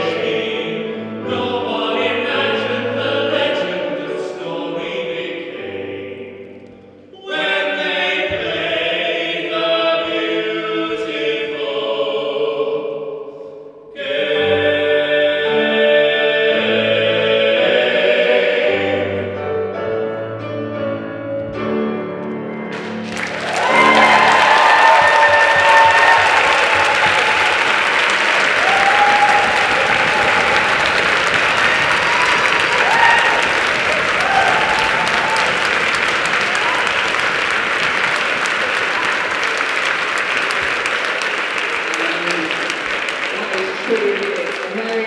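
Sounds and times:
male voices singing chord: 0.0s - 6.6s, 7.2s - 19.5s
piano chord: 19.1s - 24.4s
audience applauding: 22.7s - 45.0s
audience cheering: 22.8s - 45.0s.

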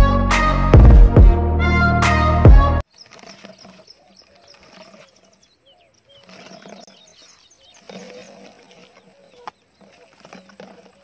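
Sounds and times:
birds chirping: 2.8s - 11.0s.

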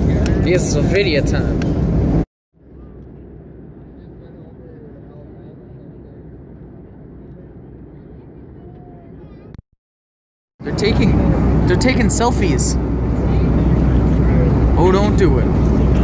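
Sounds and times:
airliner cabin rumble: 0.0s - 9.6s, 10.6s - 16.0s
faint passenger voices: 2.6s - 9.6s, 10.6s - 16.0s.

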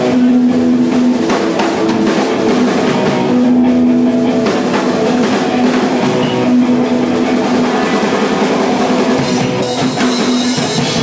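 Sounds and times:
hard rock band playing: 0.0s - 11.0s.

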